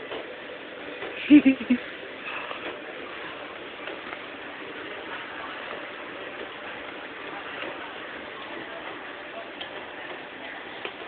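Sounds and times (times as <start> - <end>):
background hiss: 1.0 - 5.5.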